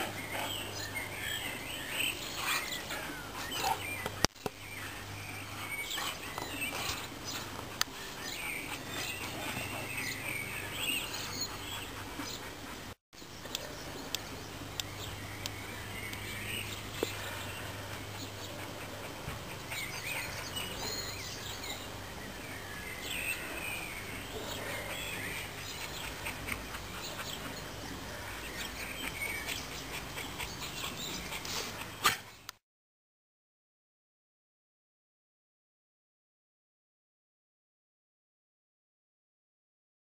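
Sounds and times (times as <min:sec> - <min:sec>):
birds chirping: 0:00.0 - 0:32.6
outdoor background noise: 0:00.0 - 0:32.6
faint dog noises: 0:16.8 - 0:21.9, 0:23.0 - 0:32.5.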